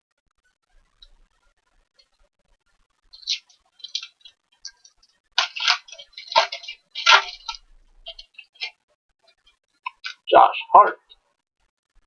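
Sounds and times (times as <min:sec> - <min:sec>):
plastic wrapper crinkling: 0:03.1 - 0:08.7.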